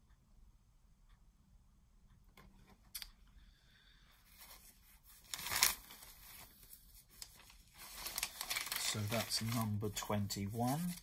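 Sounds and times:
paper record sleeve rustling: 4.3s - 11.0s.

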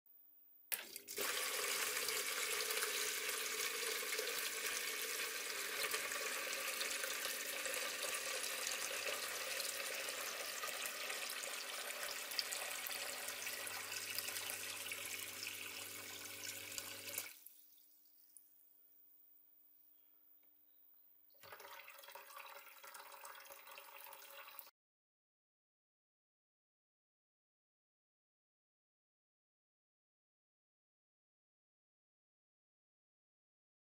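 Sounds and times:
water splashing into plastic bucket: 21.4s - 24.7s.

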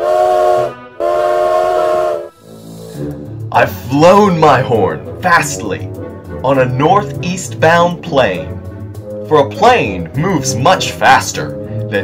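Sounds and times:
steam locomotive whistle: 0.0s - 3.0s
steam hiss: 1.8s - 3.2s.

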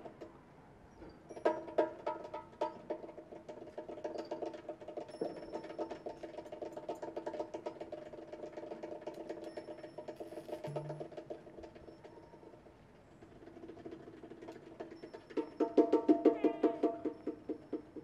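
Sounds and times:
bongos played by hand: 10.1s - 11.3s, 14.8s - 18.0s.

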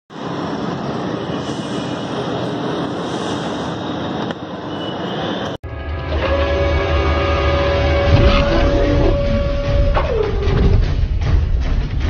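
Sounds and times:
deep rumble: 5.6s - 12.0s.

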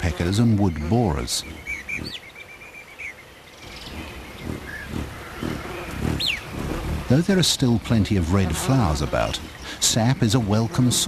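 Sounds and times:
bird chirps: 0.0s - 7.1s, 8.9s - 11.0s
low forest background sound: 0.0s - 11.0s.

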